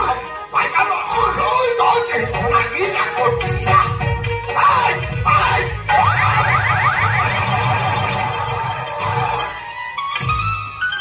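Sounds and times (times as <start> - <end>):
low musical beat: 2.2 - 10.8
rising electronic chirps: 5.9 - 9.6.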